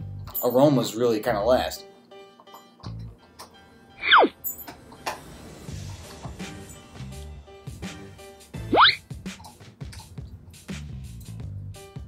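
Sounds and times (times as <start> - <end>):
background music with steady beat: 0.0 - 12.0
cartoon boing sound effect: 4.0 - 4.4, 8.7 - 9.0.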